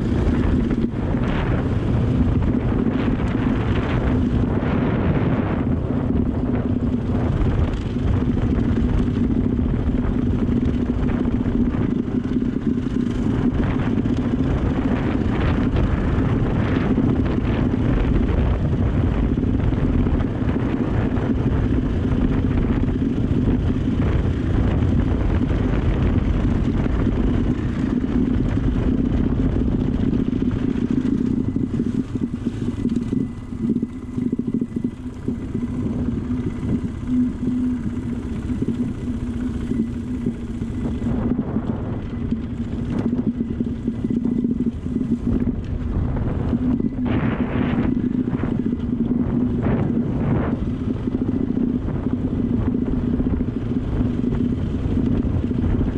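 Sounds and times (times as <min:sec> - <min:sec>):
dirt bike engine running: 0:00.0 - 0:55.9.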